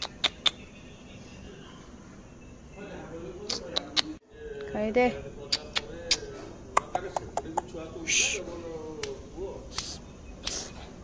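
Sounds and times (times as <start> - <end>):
tongue clicks: 0.0 - 0.6, 3.5 - 4.2, 5.5 - 7.7
short hiss: 9.7 - 10.8.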